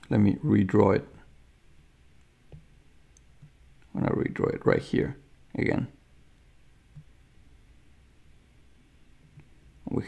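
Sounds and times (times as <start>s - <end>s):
faint clicks: 2.2s - 3.9s.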